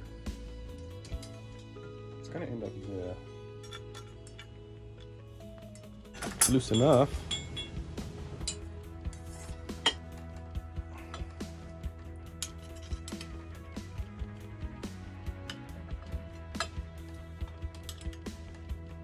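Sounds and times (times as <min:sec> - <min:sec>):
background music: 0:00.0 - 0:19.0
metallic clicks of tool on bolts: 0:00.7 - 0:01.8, 0:12.2 - 0:13.4, 0:15.4 - 0:18.6.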